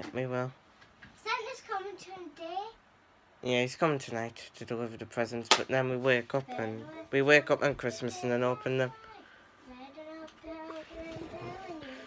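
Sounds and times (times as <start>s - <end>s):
child singing faintly: 6.6s - 12.0s.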